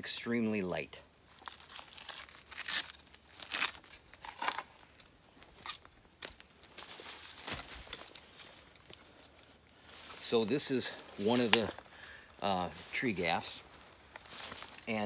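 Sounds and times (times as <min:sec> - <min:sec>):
climbing spur handling noise: 0:01.4 - 0:09.5.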